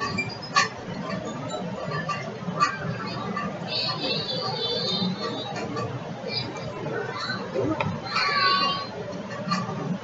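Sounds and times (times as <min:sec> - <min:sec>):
low background noise: 0:00.0 - 0:10.0.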